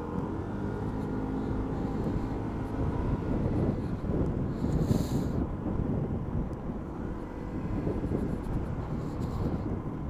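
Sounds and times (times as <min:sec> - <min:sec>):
motorcycle engine: 0:00.0 - 0:04.5
wind buffeting microphone: 0:00.1 - 0:10.0.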